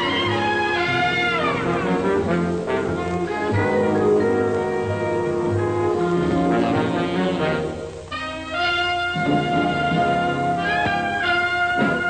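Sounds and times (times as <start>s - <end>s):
orchestral brass chords: 0.0s - 12.0s.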